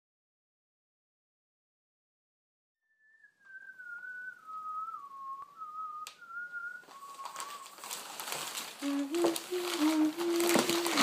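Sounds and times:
person whistling a tune: 2.9s - 7.8s, 8.8s - 11.0s.

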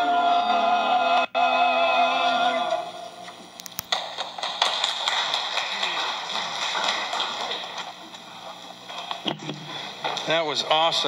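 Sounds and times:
congregation applauding: 3.9s - 9.2s.

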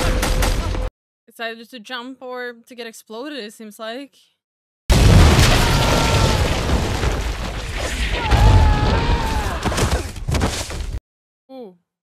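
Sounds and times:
explosion boom with rumble: 4.9s - 9.4s.

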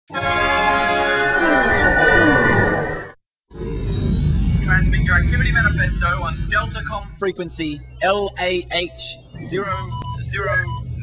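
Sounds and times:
music: 0.1s - 2.1s, 4.7s - 10.7s
spaceship engine rumble: 1.3s - 11.0s.

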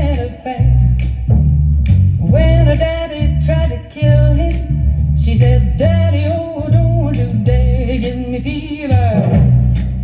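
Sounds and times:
backing track melody: 0.0s - 10.0s
electric bass playing: 0.0s - 10.0s.

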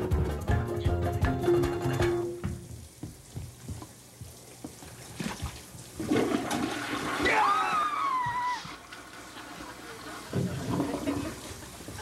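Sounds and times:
toilet flushing: 4.8s - 12.0s.

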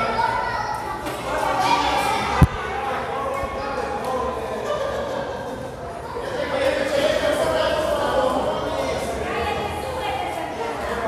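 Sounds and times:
voices in large hall: 0.0s - 11.0s.

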